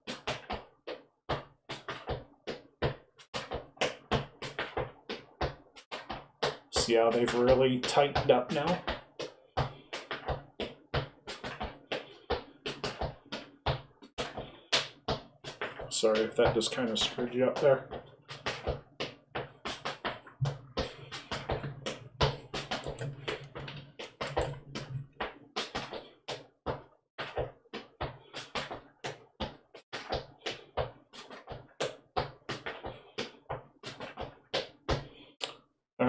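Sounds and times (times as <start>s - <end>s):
sneaker taps and scuffs on concrete: 0.0s - 35.4s.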